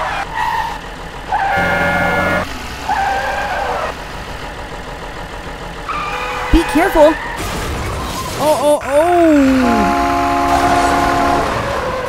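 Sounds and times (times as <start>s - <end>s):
cartoon truck engine tones: 0.0s - 12.0s.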